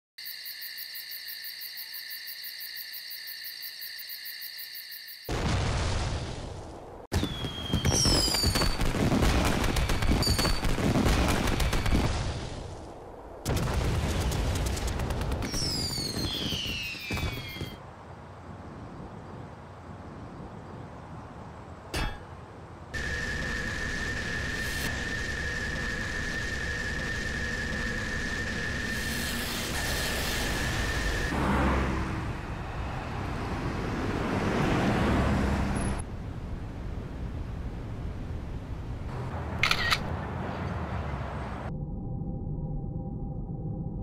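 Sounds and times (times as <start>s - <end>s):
hiss: 23.0s - 31.3s.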